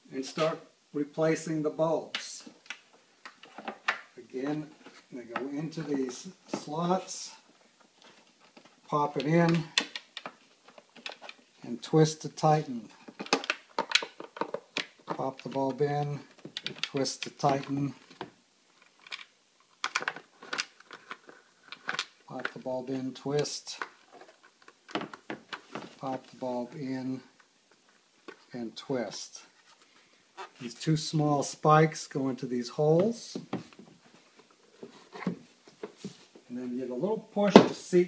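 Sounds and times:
plastic handling: 2.0s - 11.6s, 12.9s - 22.7s, 23.4s - 26.4s, 32.9s - 36.5s.

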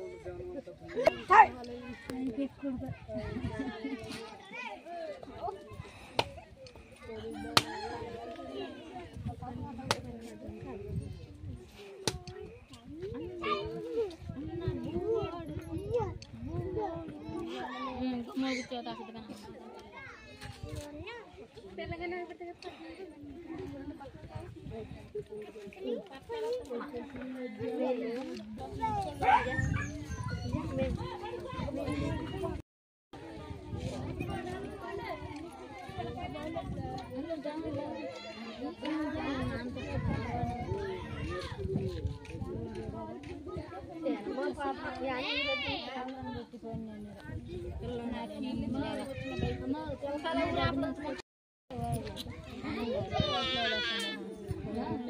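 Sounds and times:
people talking: 0.0s - 32.6s, 33.2s - 55.0s
women and children chattering: 0.0s - 55.0s.

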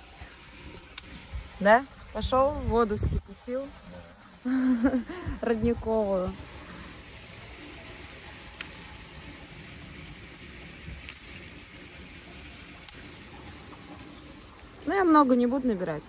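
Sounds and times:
brook water running: 0.0s - 16.0s.

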